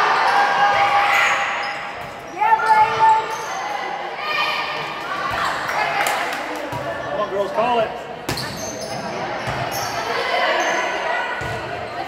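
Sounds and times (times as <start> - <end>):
shoes squeaking on court: 8.3 - 12.0.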